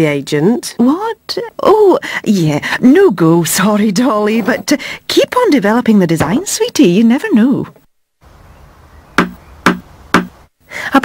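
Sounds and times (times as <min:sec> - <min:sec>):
knocking on a door: 0:09.2 - 0:10.3.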